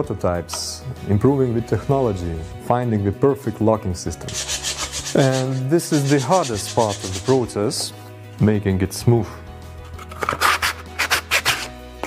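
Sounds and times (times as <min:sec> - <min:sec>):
background music: 0:00.0 - 0:12.0
sandpaper rasping on wood: 0:04.3 - 0:07.5, 0:10.2 - 0:11.7.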